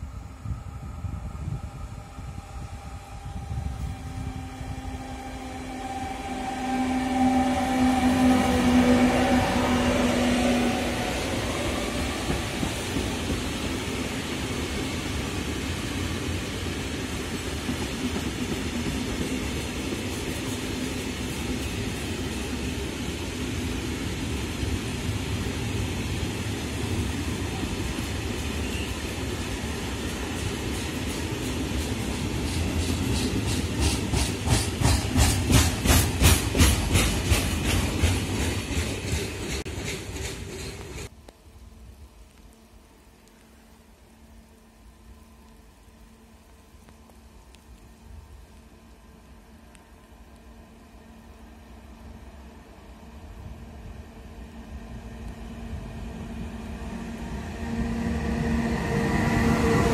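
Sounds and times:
diesel locomotive engine hum: 0:00.0 - 0:59.9.

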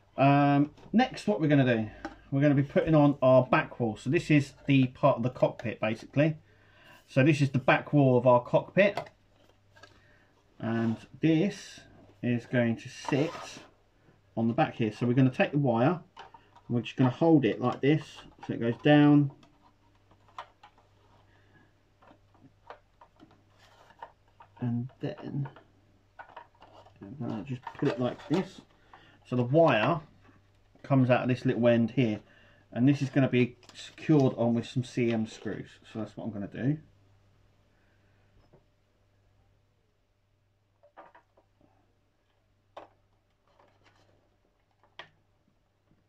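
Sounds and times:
plastic parts clicking together: 0:16.1 - 0:21.2, 0:22.0 - 0:29.0.

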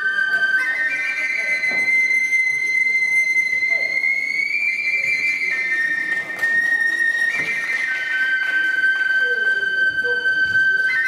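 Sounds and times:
bamboo flute long high notes: 0:00.0 - 0:11.0.

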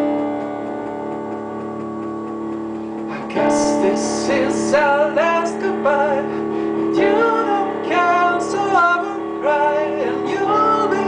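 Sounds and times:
digital piano chord: 0:00.0 - 0:11.0
faint regular ticking: 0:00.0 - 0:11.0.

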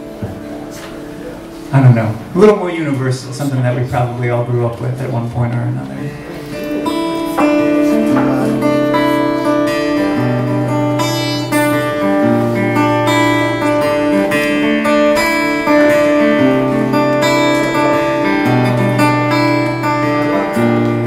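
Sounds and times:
acoustic guitar chords: 0:00.0 - 0:21.0.

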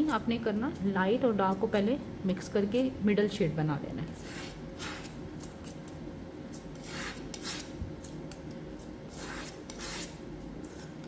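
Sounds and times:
metal palette knife scraping paste: 0:04.1 - 0:11.0.

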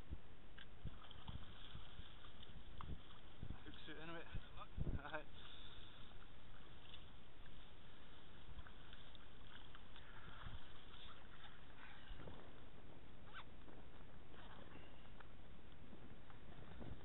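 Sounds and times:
wind rumble on microphone: 0:00.0 - 0:17.0
river water splashing and lapping: 0:00.2 - 0:17.0.

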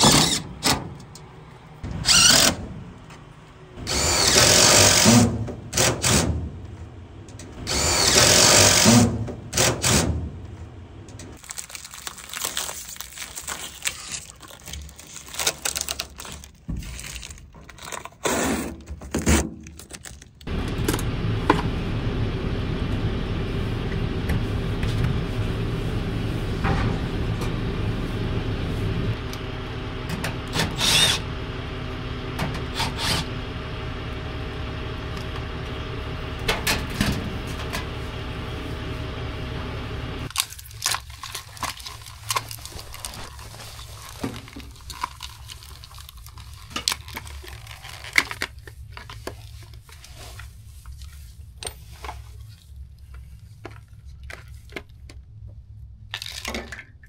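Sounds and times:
electric pump motor humming: 0:03.8 - 0:05.2, 0:07.7 - 0:09.0, 0:20.5 - 0:40.3.

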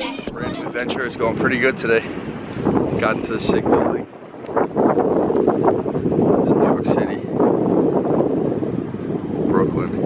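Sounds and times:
wind buffeting microphone: 0:00.2 - 0:10.0.

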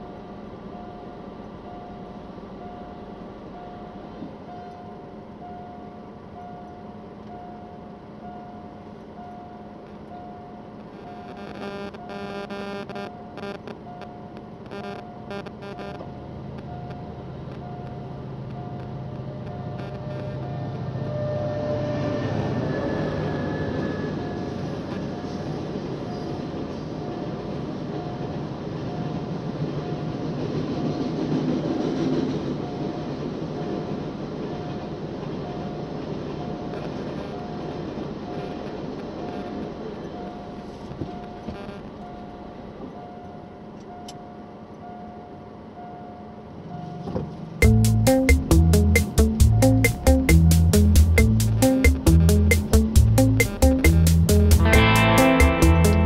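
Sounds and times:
level-crossing signal beeping: 0:08.3 - 0:26.4, 0:46.8 - 0:56.0
freight train rumbling: 0:16.0 - 0:56.0
train wheel noise: 0:16.0 - 0:56.0
train horn blasts: 0:19.8 - 0:25.0.

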